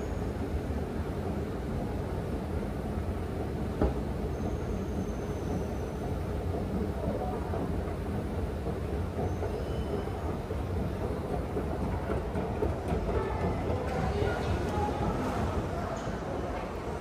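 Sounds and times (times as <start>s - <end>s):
metro station rumble and hum: 0.0s - 17.0s.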